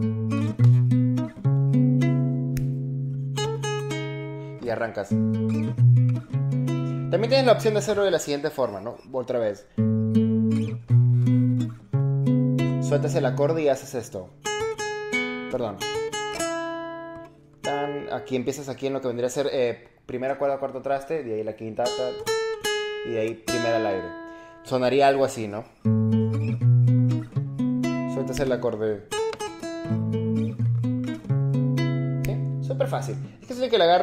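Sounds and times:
acoustic guitar plucked notes: 0:00.0 - 0:08.2, 0:09.7 - 0:18.5, 0:21.8 - 0:33.5.

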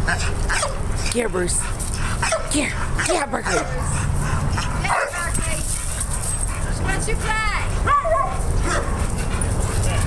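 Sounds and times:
dogs whining and yipping: 0:00.0 - 0:10.0.

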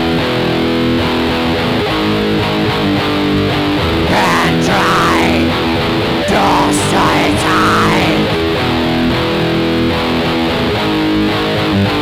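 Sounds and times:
black metal guitar and bass: 0:00.1 - 0:08.8.

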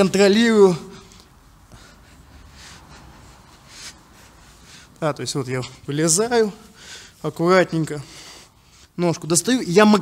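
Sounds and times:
faint breaths: 0:00.8 - 0:05.9, 0:06.5 - 0:07.3, 0:07.9 - 0:09.0.

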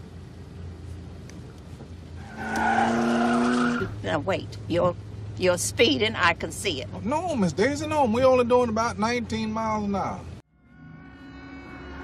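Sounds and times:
low car rumble: 0:00.0 - 0:10.4
tyres squealing: 0:02.2 - 0:04.0.

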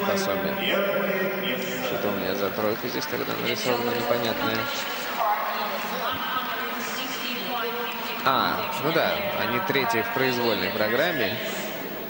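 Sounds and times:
person talking: 0:00.0 - 0:11.7
background hiss: 0:00.0 - 0:12.0.

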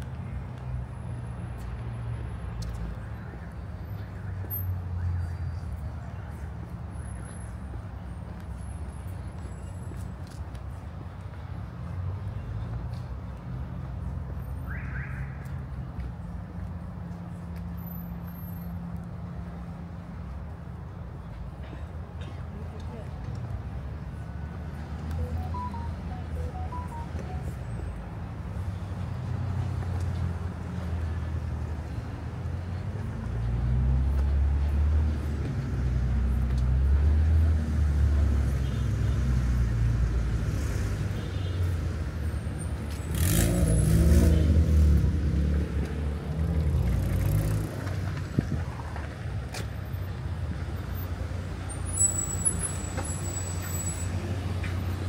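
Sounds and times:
car engines rumbling: 0:00.0 - 0:55.0
tyres on road: 0:00.0 - 0:55.0.

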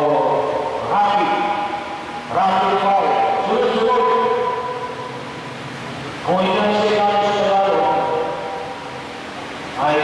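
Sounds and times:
man's voice over loudspeaker: 0:00.0 - 0:05.2, 0:06.2 - 0:08.9, 0:09.8 - 0:10.0
reverberant room noise: 0:00.0 - 0:10.0.

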